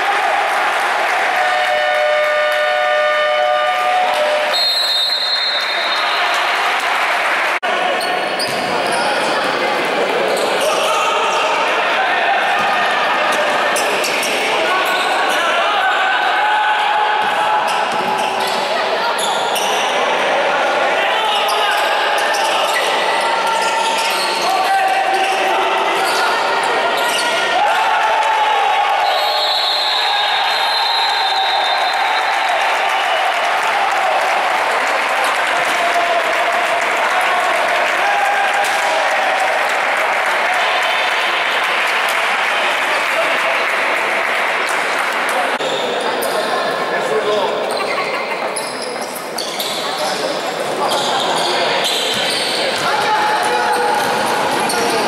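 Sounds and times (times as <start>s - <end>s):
players and spectators calling out: 0.0s - 55.0s.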